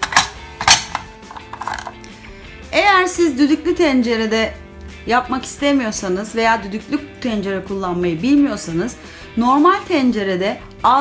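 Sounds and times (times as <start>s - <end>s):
pressure cooker lid clicking: 0.0s - 1.7s
background music: 0.0s - 11.0s.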